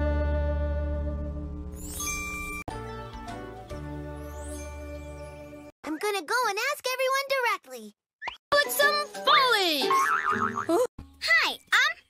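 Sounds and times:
children's music: 0.0s - 6.1s, 8.5s - 10.7s
high childlike cartoon voice: 5.8s - 7.9s, 11.2s - 12.0s.

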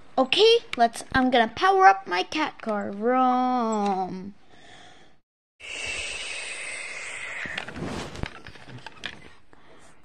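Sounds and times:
breathy hiss: 5.6s - 7.7s.

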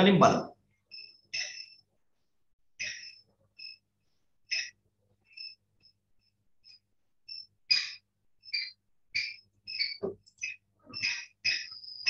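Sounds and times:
small animal chirping: 0.9s - 1.8s, 2.8s - 3.8s, 4.5s - 5.6s, 6.6s - 12.0s.

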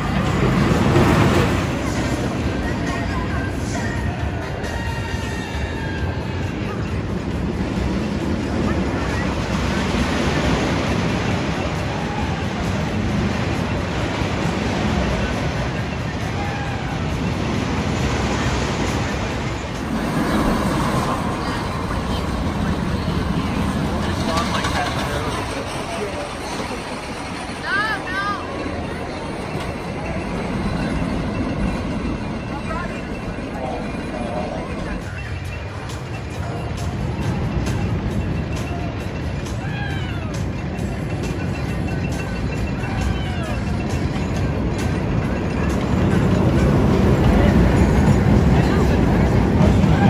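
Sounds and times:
people's voices: 0.0s - 50.0s
roller coaster trains rumbling: 0.0s - 50.0s.

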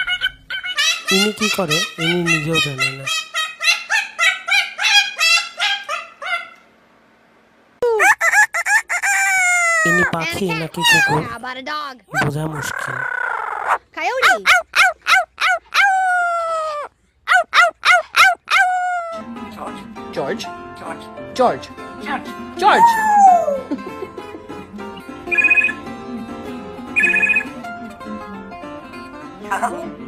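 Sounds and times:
cockatoo repeated calls: 0.0s - 6.6s, 12.2s - 19.2s, 27.0s - 27.5s
parrot loud calls and whoops: 3.0s - 6.6s, 7.8s - 10.1s, 13.0s - 19.2s, 22.7s - 23.7s.

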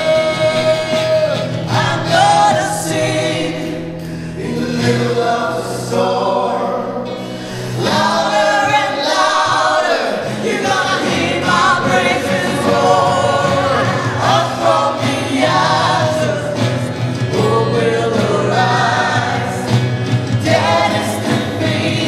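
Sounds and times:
man singing lead: 0.0s - 19.7s
acoustic guitar: 0.0s - 22.0s
bass guitar: 0.0s - 22.0s
electric guitar: 0.0s - 22.0s
group of singers: 0.0s - 22.0s.

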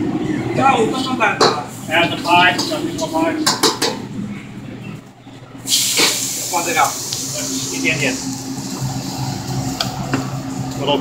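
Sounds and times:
food sizzling in hot oil: 5.7s - 10.8s.

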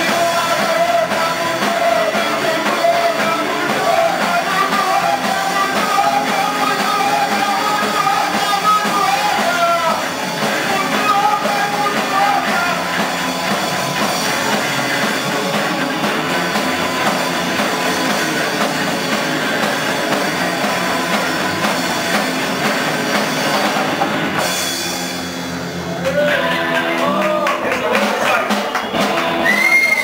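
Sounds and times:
person singing: 0.0s - 15.6s, 26.0s - 30.0s
live punk blues band: 0.0s - 30.0s.

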